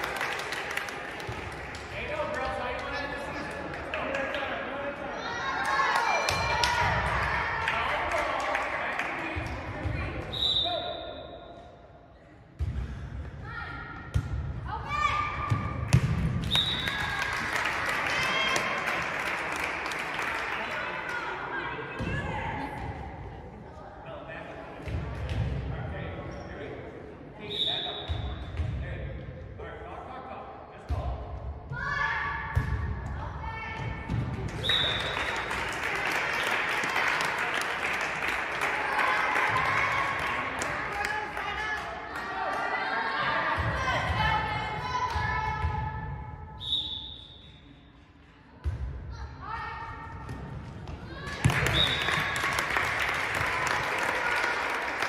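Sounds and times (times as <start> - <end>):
referee whistle blasts: 10.3 - 11.5, 16.4 - 17.0, 34.6 - 35.4, 46.6 - 47.6, 51.6 - 52.3.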